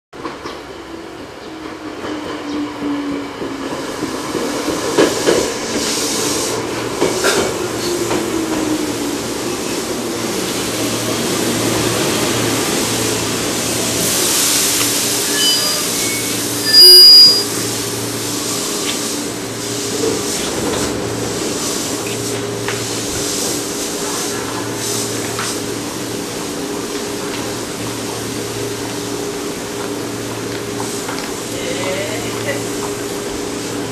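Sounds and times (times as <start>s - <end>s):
train low hum: 0.2s - 33.9s
train whine falling in pitch: 15.0s - 18.1s.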